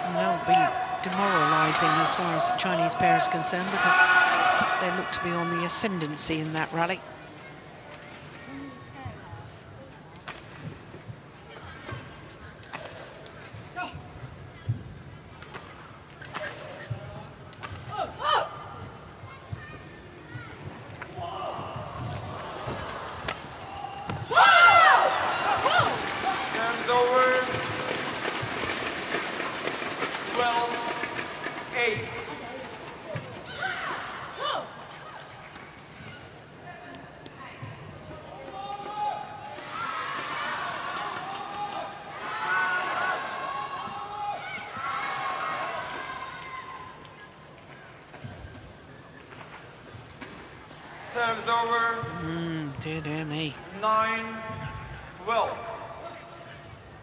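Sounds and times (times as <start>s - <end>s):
people shouting: 23.7s - 26.5s.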